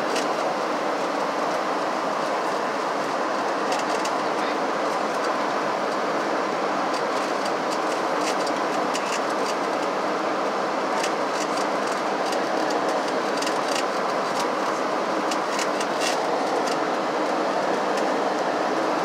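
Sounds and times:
airplane cabin rushing noise: 0.0 - 19.0.

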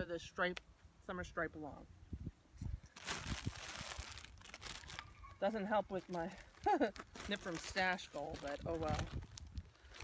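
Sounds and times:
bag crinkling and rustling: 2.9 - 10.0.

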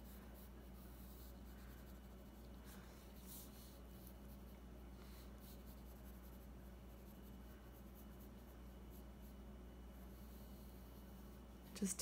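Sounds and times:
pencil scratching on paper: 0.0 - 11.5
low steady hum: 0.0 - 12.0.

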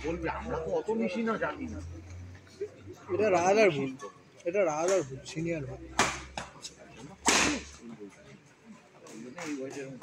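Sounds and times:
racquet smashing shuttlecock: 7.2 - 7.7.

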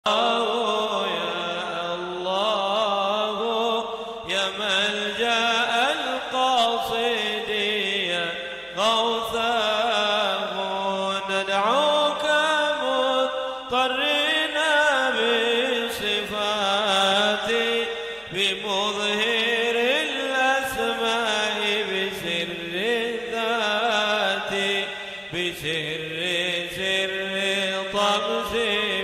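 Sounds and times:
man chanting into microphone: 0.0 - 29.0.

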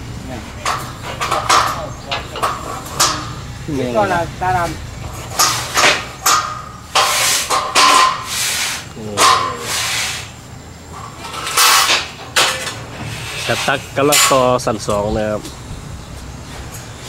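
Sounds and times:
metal pipes clanking: 0.0 - 15.6
metal scraping: 0.4 - 15.0.

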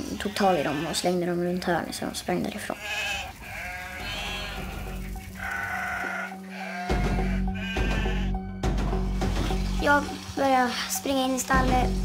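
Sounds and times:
sheep bleating: 0.0 - 1.2, 2.7 - 8.4
dramatic music with low drone: 4.0 - 11.0.

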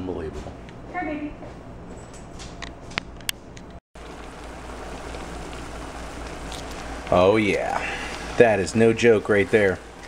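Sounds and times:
low hiss: 4.0 - 10.0
mushrooms sizzling in a pan: 4.0 - 10.0.

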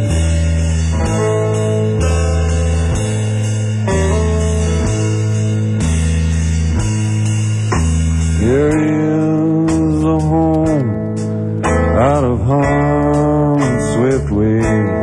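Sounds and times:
guitar and bass chords: 0.0 - 15.0
live band playing slow song: 0.0 - 15.0.

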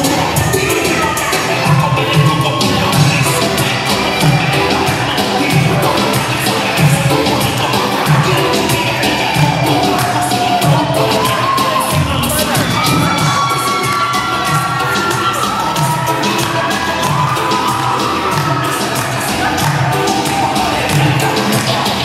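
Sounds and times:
crowd cheering and shouting: 0.0 - 22.0
reggaeton music with steady beat: 0.0 - 22.0.

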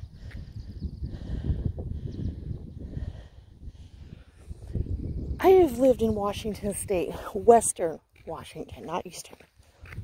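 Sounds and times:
wind buffeting microphone: 0.0 - 9.0, 9.6 - 10.0.

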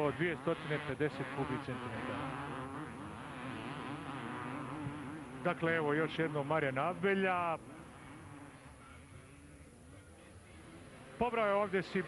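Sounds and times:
two-stroke motocross engine: 0.0 - 12.0.

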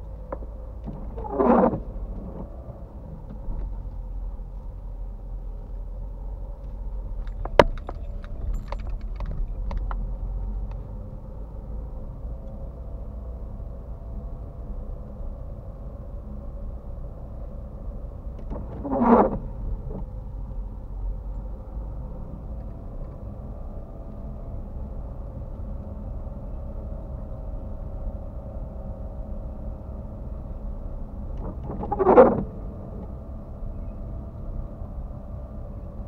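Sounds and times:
car engine and tyre rumble: 0.0 - 36.0.

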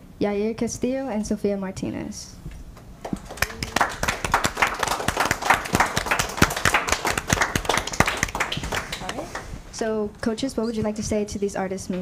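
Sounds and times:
people applauding: 3.0 - 9.5.

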